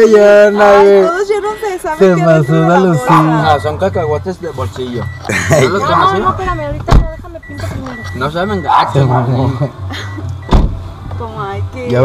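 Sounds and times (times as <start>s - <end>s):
car engine idling: 0.0s - 12.0s
sharp thump: 10.5s - 10.8s.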